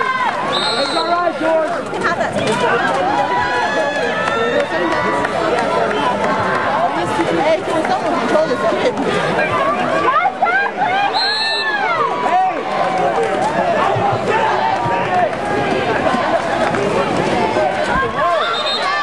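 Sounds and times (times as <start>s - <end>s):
crowd shouting: 0.0s - 19.0s
short high whistle: 11.1s - 11.8s.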